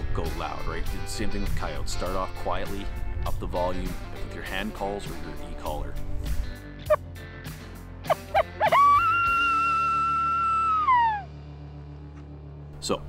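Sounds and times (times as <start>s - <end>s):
background music: 0.0s - 13.0s
coyote yips and howl: 8.1s - 11.3s.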